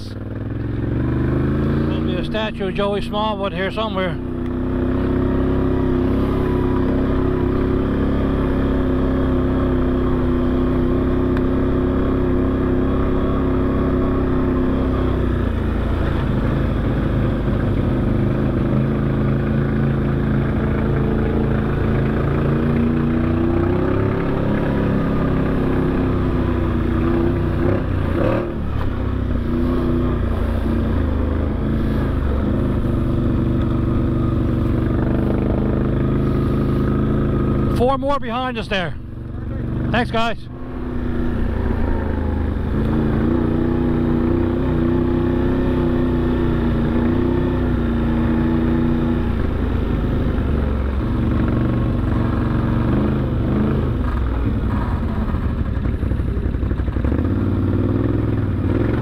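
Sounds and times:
off-road vehicle engine running: 0.0 - 59.0.

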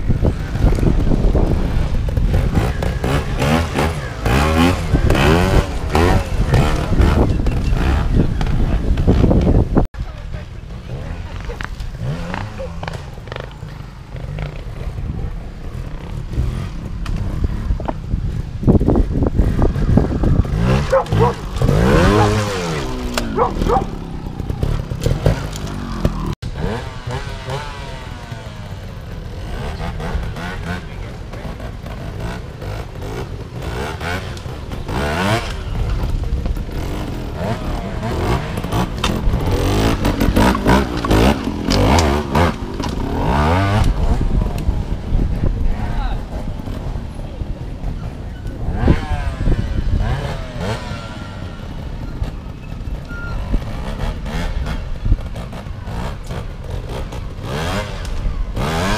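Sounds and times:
motorcycle engines revving: 0.0 - 58.9.

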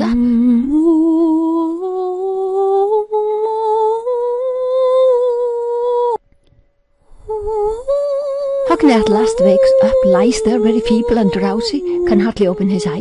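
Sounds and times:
woman humming: 0.0 - 6.2, 7.2 - 13.0.

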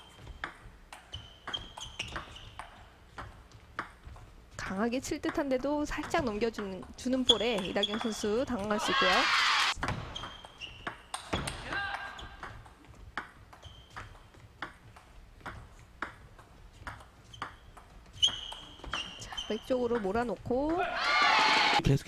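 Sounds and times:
shoes squeaking on floor: 0.0 - 4.7, 7.0 - 21.8
loud shout: 8.8 - 9.8, 11.6 - 12.2, 20.8 - 21.8.

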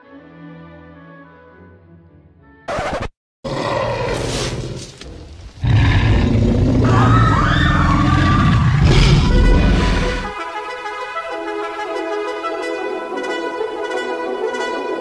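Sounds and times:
music: 0.0 - 2.7, 8.8 - 15.0
dinosaur roar: 3.5 - 10.3.

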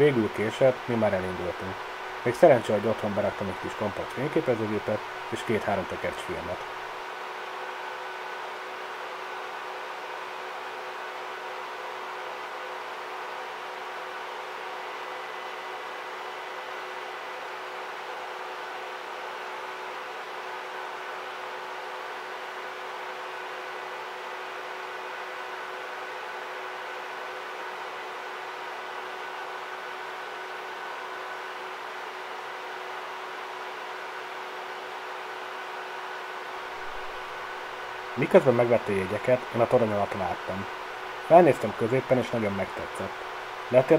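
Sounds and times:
projector cooling fans humming: 0.0 - 43.9.

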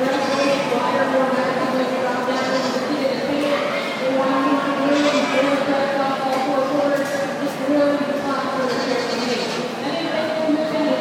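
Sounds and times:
crowd chatter: 0.0 - 11.0
goats bleating: 4.8 - 5.4, 8.6 - 9.6.

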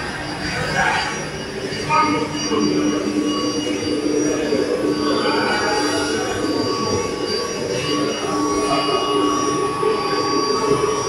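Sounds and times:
rotary kiln machine noise: 0.0 - 11.0.

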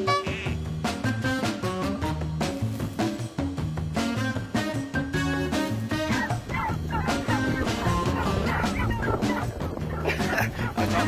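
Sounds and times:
background music: 0.0 - 11.0
dog barking: 6.1 - 10.0.

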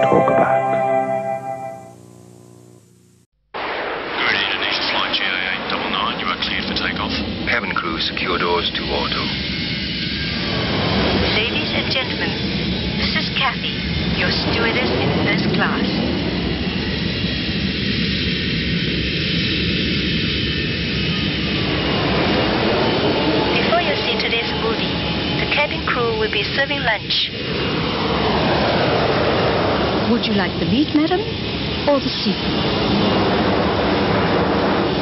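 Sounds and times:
gliding tone: 0.0 - 3.0
jet engine rumble and hiss: 3.6 - 35.0
indistinct voices: 13.0 - 16.1, 22.4 - 27.4.

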